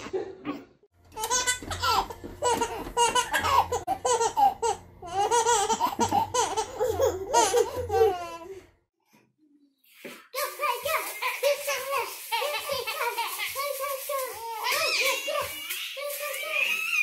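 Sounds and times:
small child laughing: 0:01.2 - 0:08.5, 0:11.0 - 0:17.0.

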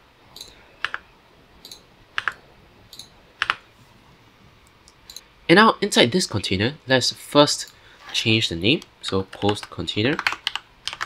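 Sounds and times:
keyboard and mouse clicks: 0:00.3 - 0:01.0, 0:01.6 - 0:03.6, 0:09.3 - 0:11.0.

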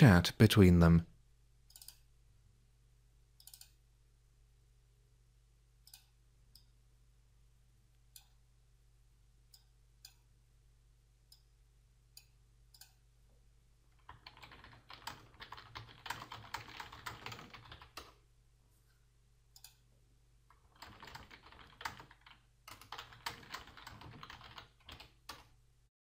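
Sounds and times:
typing on computer keyboard: 0:14.0 - 0:18.2, 0:20.5 - 0:25.5.

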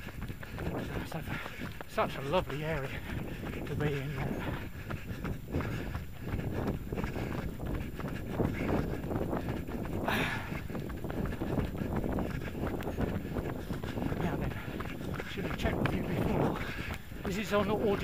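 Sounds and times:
running footsteps on pavement: 0:00.0 - 0:18.0.

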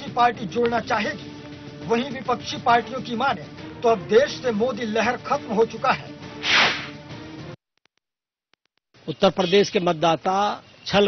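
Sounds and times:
background music: 0:00.0 - 0:07.6
whoosh sound effect: 0:06.4 - 0:07.0.

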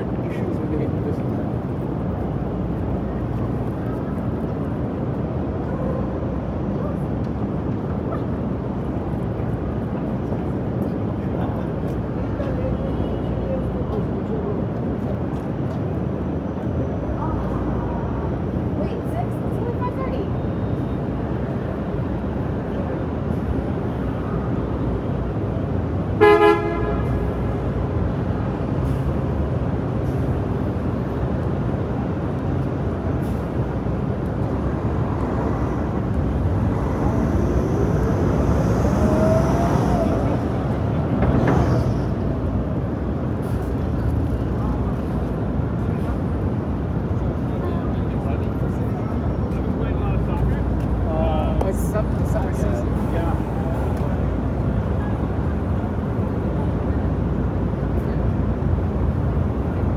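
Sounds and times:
passersby: 0:00.0 - 0:59.9
steady traffic: 0:00.0 - 0:59.9
car horn honk: 0:26.2 - 0:27.2.

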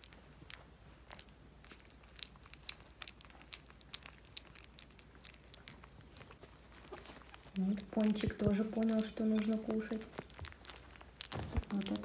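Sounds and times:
puppies lapping and smacking: 0:00.0 - 0:12.0.

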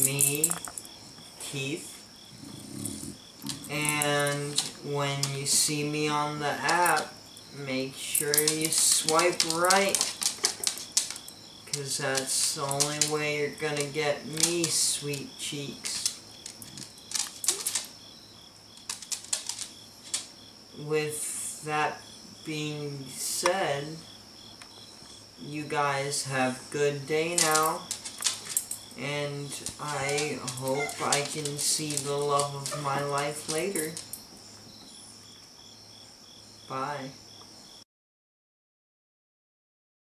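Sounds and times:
cricket chirping: 0:00.0 - 0:37.8.

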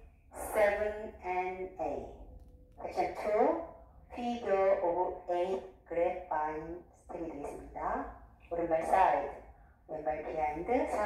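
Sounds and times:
woman speaking: 0:00.0 - 0:11.0.

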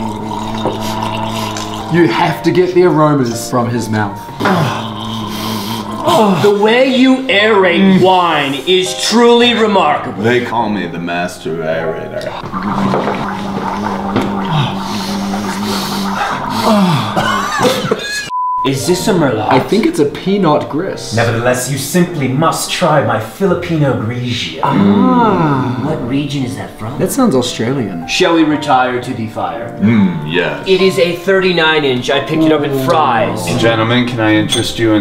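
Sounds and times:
man gargling low tone: 0:00.0 - 0:02.4, 0:04.4 - 0:06.5, 0:12.2 - 0:18.3, 0:24.6 - 0:25.9, 0:29.8 - 0:30.6
man holding steady note: 0:12.4 - 0:18.3.

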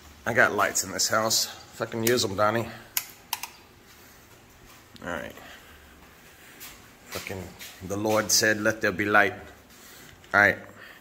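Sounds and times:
light switch clicks: 0:02.9 - 0:03.6.

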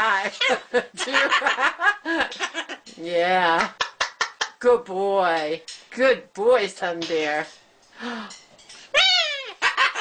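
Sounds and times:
cockatoo calling: 0:08.9 - 0:10.0.

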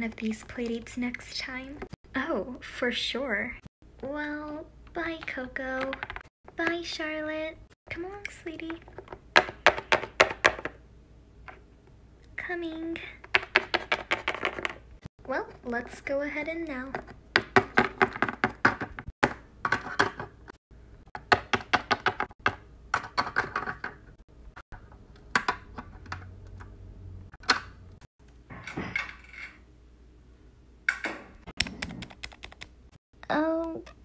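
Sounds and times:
plastic figurines tapping on hard surface: 0:09.0 - 0:10.8.

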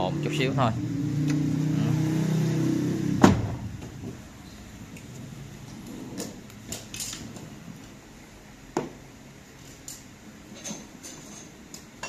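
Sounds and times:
car door shutting: 0:03.2 - 0:04.1.

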